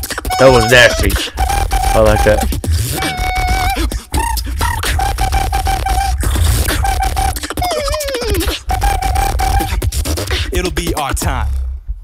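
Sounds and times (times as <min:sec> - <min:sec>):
mouth percussion clicks: 0:00.0 - 0:11.2
beatbox vocal bass: 0:00.0 - 0:12.0.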